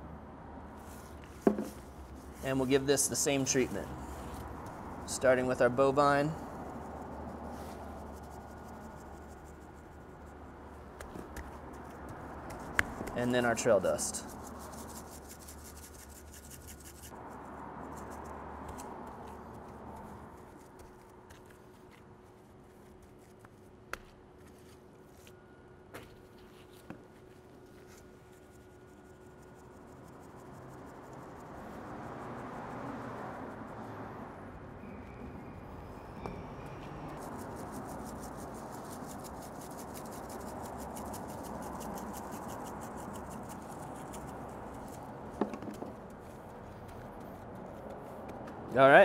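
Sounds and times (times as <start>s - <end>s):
hands rustling and rubbing meat: 6.6s - 17.2s.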